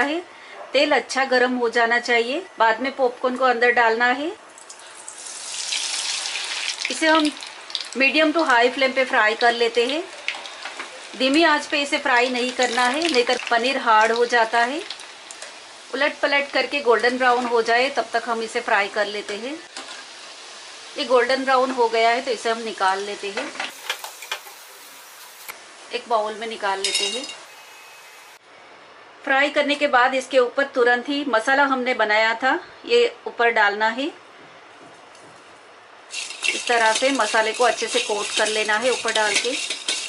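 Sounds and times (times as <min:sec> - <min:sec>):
hot oil sizzling: 0:04.5 - 0:28.4, 0:36.1 - 0:40.0.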